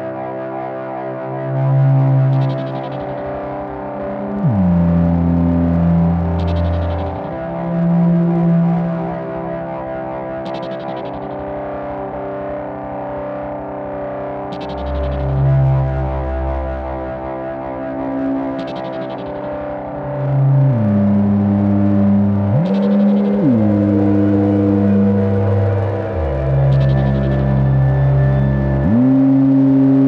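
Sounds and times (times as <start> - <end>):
sustained synth notes: 4.2 - 9.3, 14.6 - 17.0, 18.1 - 30.0
low bass drone: 4.3 - 9.0, 14.8 - 16.9, 20.0 - 30.0.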